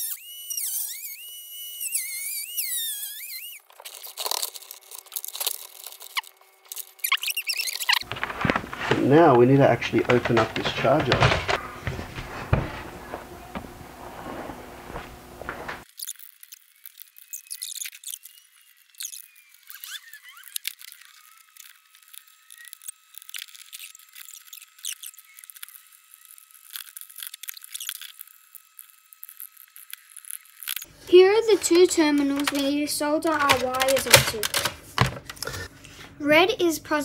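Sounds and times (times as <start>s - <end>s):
high-pitched clicks: 31.6s - 34.7s
screwdrivers clicking on plastic: 31.6s - 35.5s.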